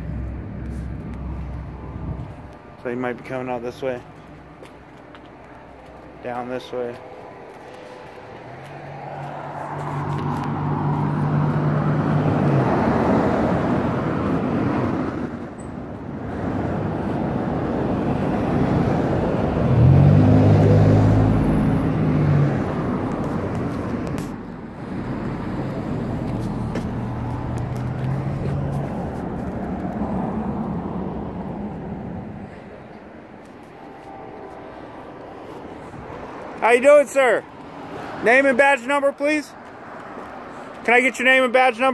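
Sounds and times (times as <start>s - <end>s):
vehicles passing by: 0.0s - 41.9s.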